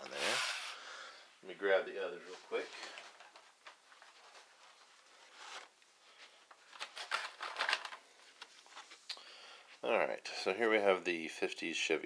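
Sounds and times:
packaging rustle: 6.5s - 9.0s
plastic and card clicks: 6.7s - 8.5s.

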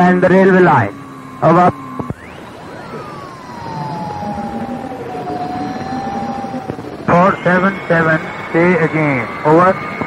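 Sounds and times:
radio channel hiss: 0.0s - 9.8s
radio heterodyne whistle: 0.7s - 10.0s.

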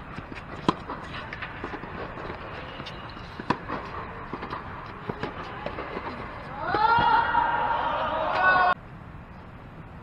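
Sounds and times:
tennis balls hit by rackets: 0.0s - 7.4s
sneaker squeaks: 2.4s - 4.1s.

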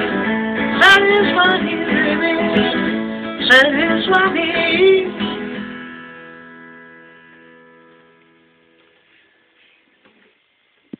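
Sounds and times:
acoustic guitar chord ringing: 0.0s - 8.8s.

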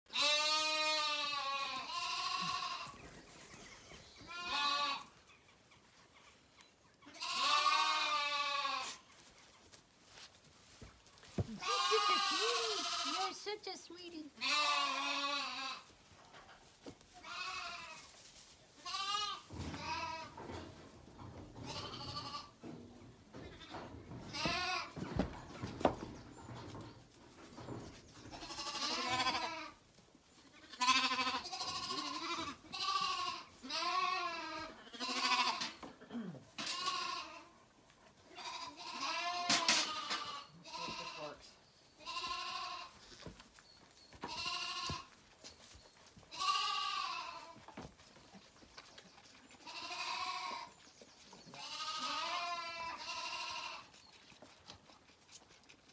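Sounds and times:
lambs bleating: 0.1s - 3.0s, 4.2s - 5.2s, 7.0s - 9.0s, 11.4s - 13.6s, 14.4s - 15.9s, 17.2s - 18.1s, 18.8s - 20.4s, 21.6s - 22.5s, 23.6s - 25.0s, 28.3s - 29.8s, 30.4s - 35.9s, 36.5s - 37.6s, 38.3s - 41.4s, 42.0s - 43.3s, 44.2s - 45.2s, 46.3s - 47.6s, 49.6s - 50.7s, 51.6s - 54.0s.

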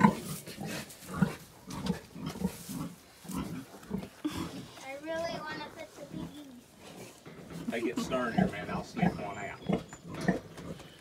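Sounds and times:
piglets grunting: 0.0s - 11.0s.

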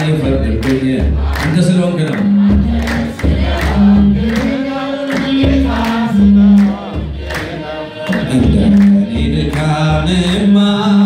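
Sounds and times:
low bass accompaniment: 0.0s - 11.0s
soloist leading choir singing hymn: 0.0s - 11.0s.

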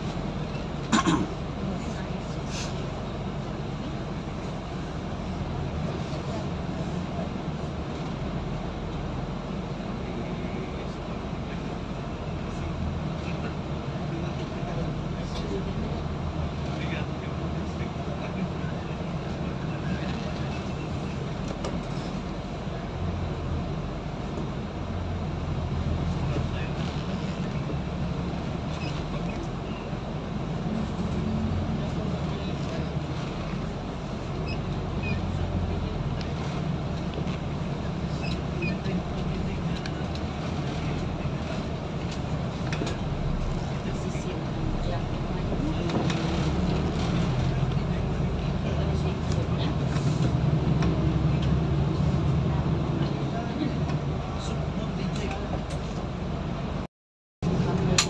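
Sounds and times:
vehicle engine and road noise: 0.0s - 58.0s.

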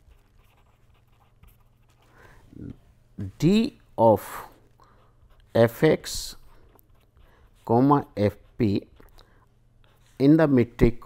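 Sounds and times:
pen scratching on paper: 0.0s - 2.1s, 4.9s - 9.1s, 9.8s - 10.6s.

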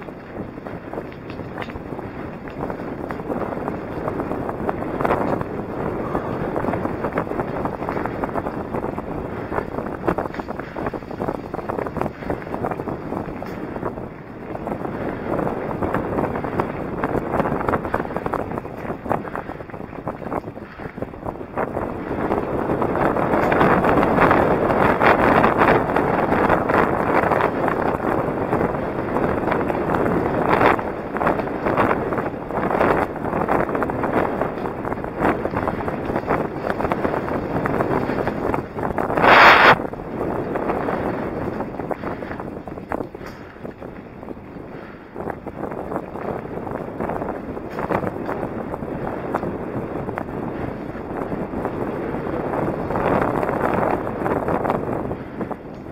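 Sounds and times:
bike tyres rolling on gravel: 0.0s - 55.9s
wind buffeting microphone: 0.0s - 55.9s
short burst of noise: 39.2s - 39.8s.

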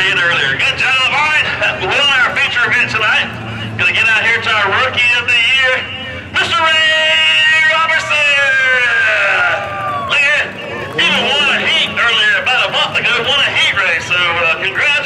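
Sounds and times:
man talking: 0.0s - 15.0s
crowd babble: 7.7s - 15.0s.

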